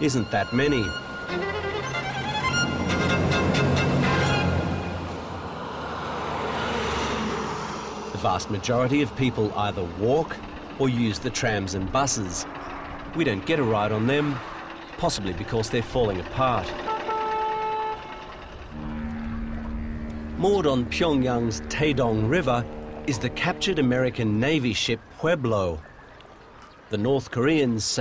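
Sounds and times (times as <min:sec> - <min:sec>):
truck driving past: 0:00.0 - 0:24.8
steady pitched tone: 0:16.2 - 0:24.8
lower steady tone: 0:16.9 - 0:24.6.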